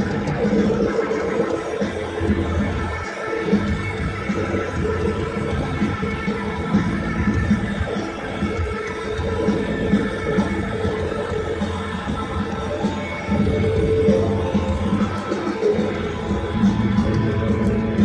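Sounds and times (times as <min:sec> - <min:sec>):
live rock band: 0:00.0 - 0:18.0
sustained electric guitar chords: 0:00.0 - 0:18.0.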